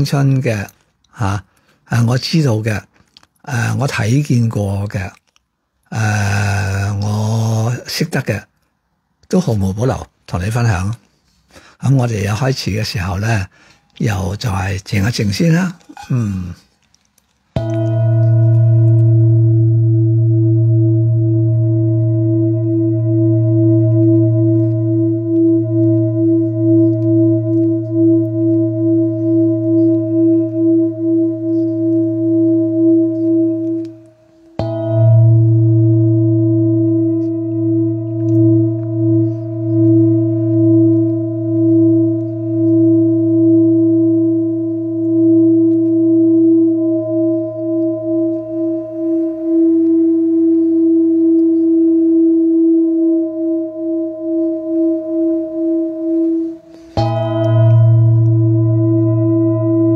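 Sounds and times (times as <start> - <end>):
singing bowl struck: 17.6 - 50.7, 52.8 - 59.9
low drone: 17.6 - 59.9
singing bowl humming: 17.6 - 59.9.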